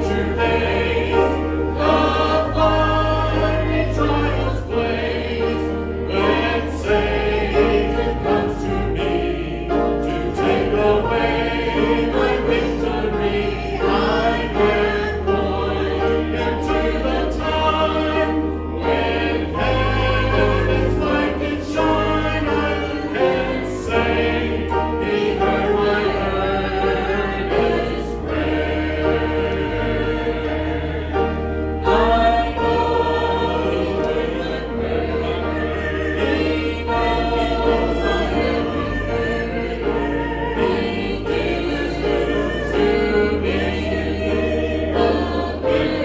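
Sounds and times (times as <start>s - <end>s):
gospel hymn singing: 0.0s - 46.0s.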